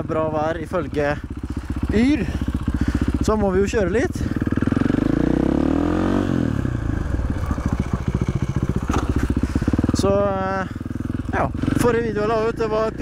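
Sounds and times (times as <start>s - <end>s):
dirt bike engine accelerating: 0.0s - 13.0s.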